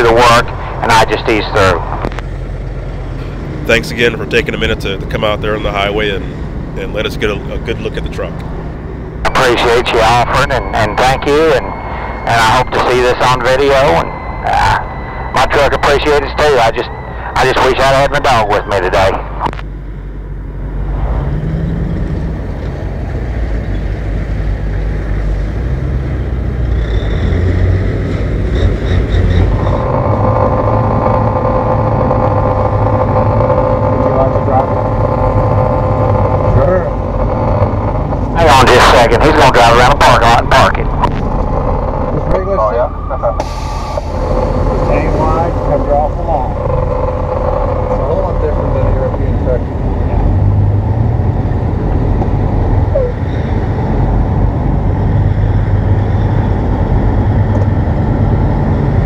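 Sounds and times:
loud burst of engine noise: 0.0s - 22.5s, 24.9s - 59.0s
diesel truck engine idling: 28.5s - 57.3s.

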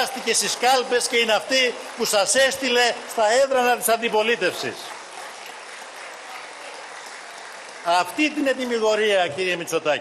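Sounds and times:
distant steady applause: 0.0s - 9.8s.

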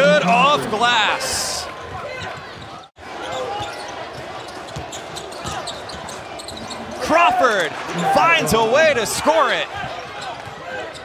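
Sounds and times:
murmur of voices in arena: 0.0s - 11.0s.

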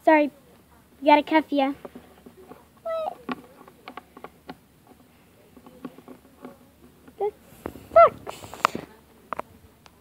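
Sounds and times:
plastic toys clicking: 1.8s - 7.3s.

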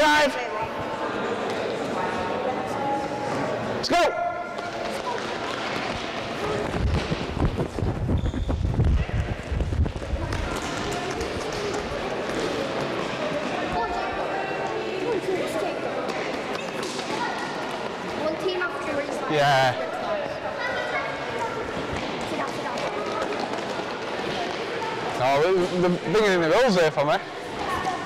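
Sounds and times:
running footsteps on hall floor: 4.5s - 14.0s, 21.7s - 24.9s
children's voices: 20.0s - 25.2s, 27.3s - 28.0s.

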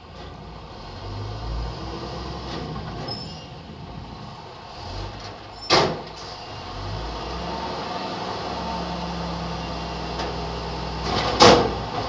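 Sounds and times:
truck engine and hydraulic lift: 0.0s - 12.0s.

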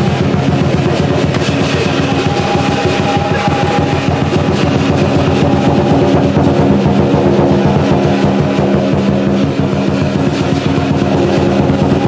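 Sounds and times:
clashing cymbals: 0.0s - 12.0s
drum beaten fast: 0.0s - 12.0s
ringing gong: 0.0s - 12.0s.

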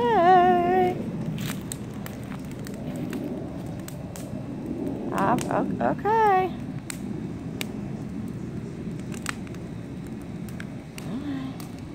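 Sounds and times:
fire crackles and pops: 0.0s - 11.9s
fire flames rushing: 0.0s - 11.9s.

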